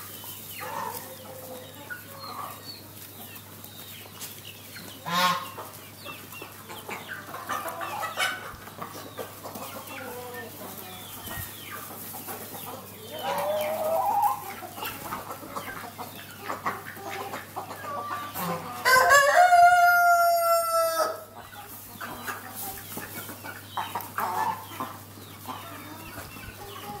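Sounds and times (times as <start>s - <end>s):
chickens clucking: 0.0s - 27.0s
rooster crowing: 18.8s - 21.2s.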